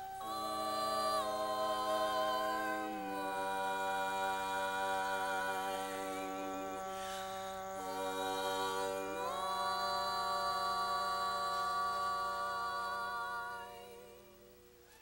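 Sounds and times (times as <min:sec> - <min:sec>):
women singing a cappella harmony: 0:00.0 - 0:14.9.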